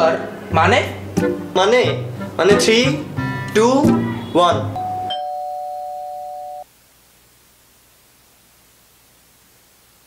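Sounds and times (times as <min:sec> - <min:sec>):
electronic doorbell tone: 0:04.7 - 0:06.7
faint hiss: 0:06.6 - 0:10.0.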